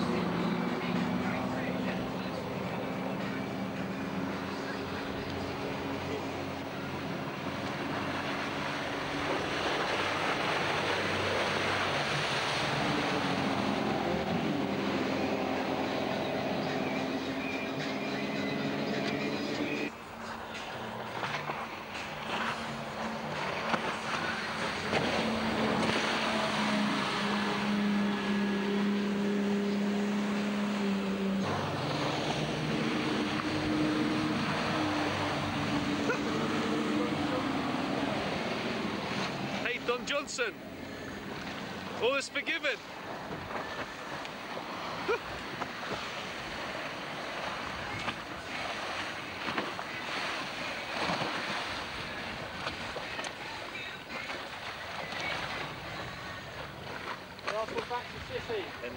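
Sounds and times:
powerboat engines running hard: 0.0 - 58.9
water rushing: 0.0 - 58.9.

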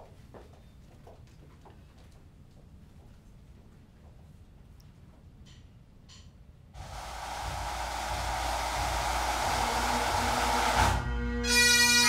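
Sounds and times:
steady rushing noise: 6.8 - 11.0
bagpipes playing: 6.8 - 12.0.

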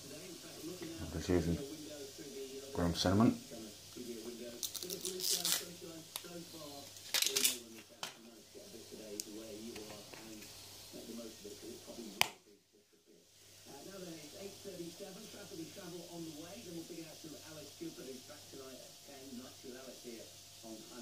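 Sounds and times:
man talking quietly: 0.0 - 21.0.

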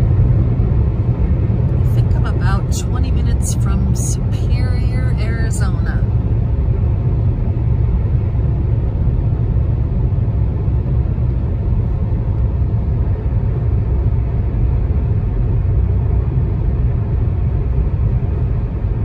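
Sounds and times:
car cabin road noise: 0.0 - 19.0.

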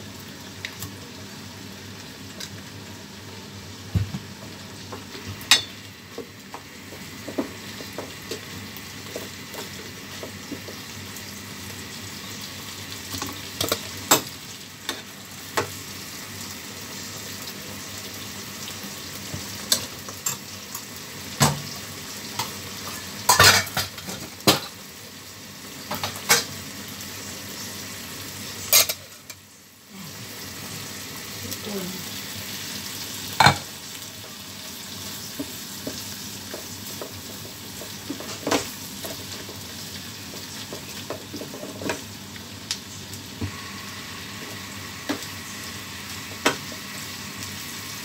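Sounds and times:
food sizzling in a pan: 0.0 - 48.0.

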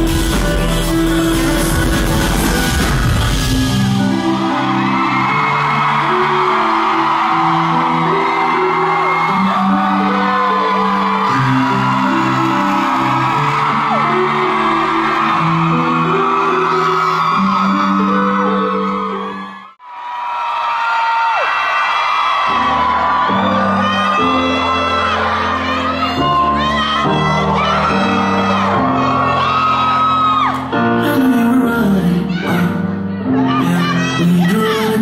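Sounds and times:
live amplified pop music: 0.0 - 19.6, 21.2 - 35.0
audience whooping and screaming: 0.0 - 31.0.

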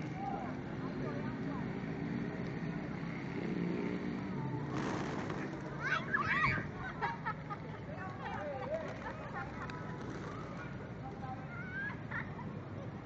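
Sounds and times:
vehicle hum: 0.0 - 12.9
voices: 0.0 - 13.0.

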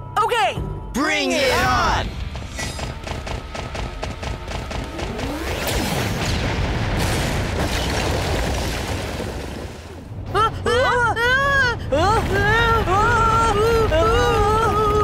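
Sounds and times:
background music: 0.0 - 6.0.

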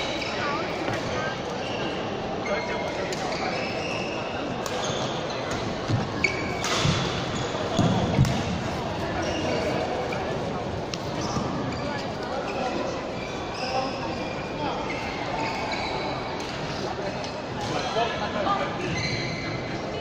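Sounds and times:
chatter of people: 0.0 - 20.0
shoe squeaks on court floor: 0.1 - 10.3, 11.1 - 17.9, 18.7 - 19.7
racket hitting shuttlecock: 7.8 - 8.6.

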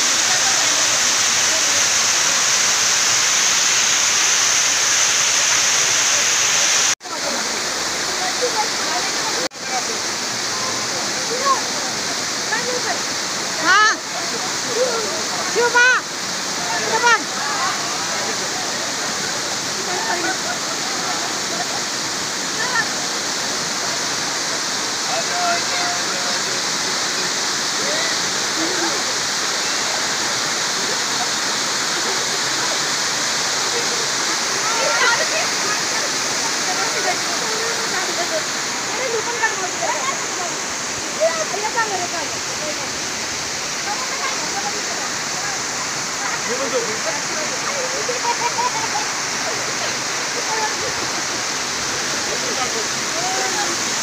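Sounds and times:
waterfall rushing over rock: 0.0 - 54.0.

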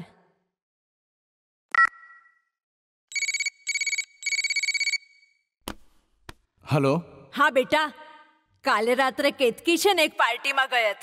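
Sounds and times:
electronic telephone ringing: 3.1 - 5.4.

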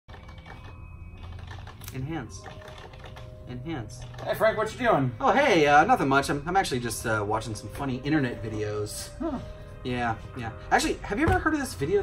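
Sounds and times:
fast typing on computer keyboard: 0.1 - 4.7.

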